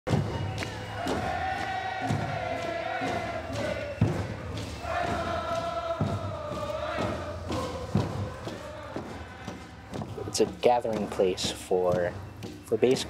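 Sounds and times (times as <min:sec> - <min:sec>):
group singing in unison: 0:00.1 - 0:11.4
steady drum beat: 0:00.1 - 0:13.0.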